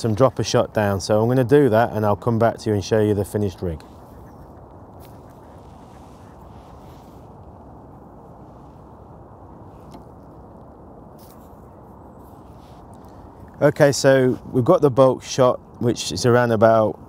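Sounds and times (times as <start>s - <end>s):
steady low rush: 0.0s - 17.0s.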